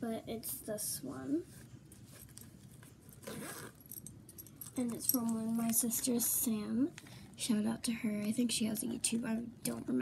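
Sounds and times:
rustling and scraping of phone holder: 1.6 - 4.0.

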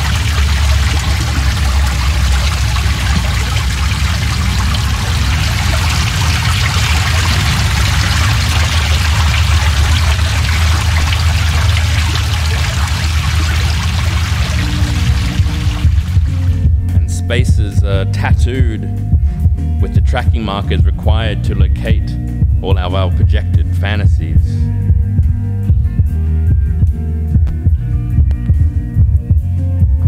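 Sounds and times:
steady rushing noise: 0.0 - 17.1
heavy low drone: 0.0 - 26.9.

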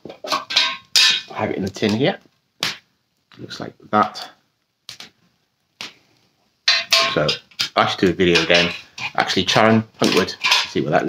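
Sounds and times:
man talking: 1.3 - 2.3, 3.3 - 4.4, 7.0 - 11.0.

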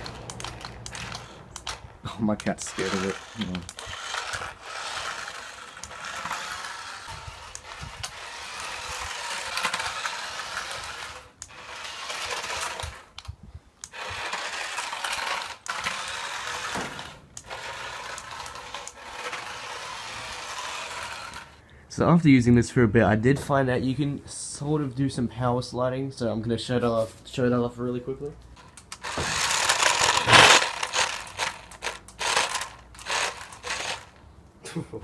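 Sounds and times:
toy car electric motor whirring: 0.0 - 21.6, 28.6 - 34.2.

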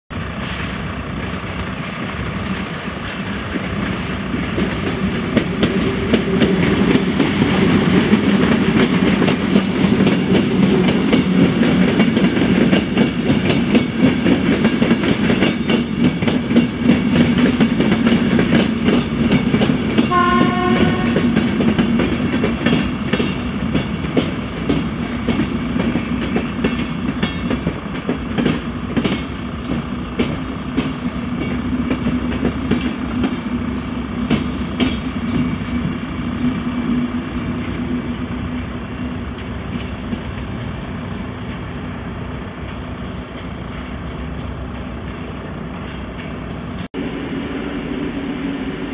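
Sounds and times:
train rumble: 0.1 - 48.9
train wheels clattering over rail joints: 1.5 - 46.9
train horn: 20.0 - 21.5.

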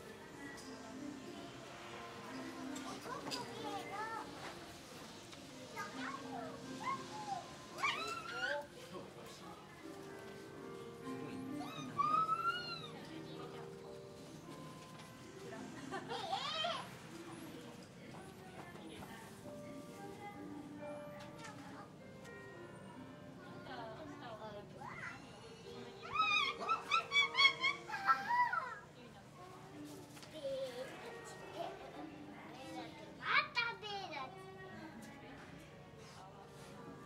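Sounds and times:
young child squealing: 7.3 - 8.7, 11.6 - 13.0, 26.1 - 28.8
young voices squealing: 26.1 - 28.4.

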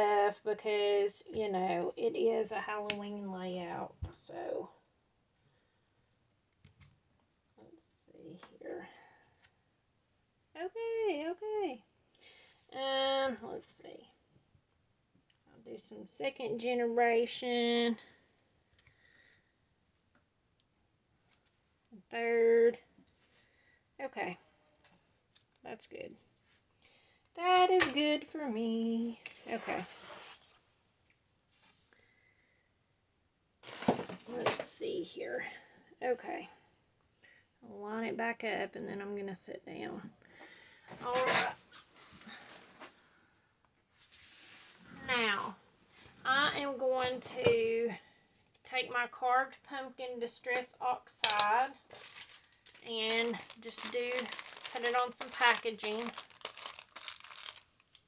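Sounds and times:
plastic packaging crinkling: 33.6 - 34.7, 51.2 - 58.0
paper rustling: 51.4 - 58.0.

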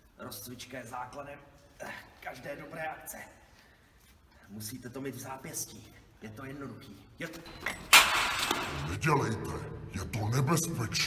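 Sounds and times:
hammer bang: 7.7 - 8.9
man's voice: 8.7 - 11.0.

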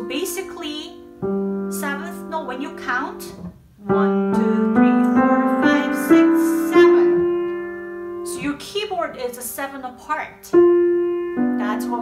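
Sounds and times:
piano notes stepping up a scale: 0.0 - 9.5, 10.5 - 12.0.

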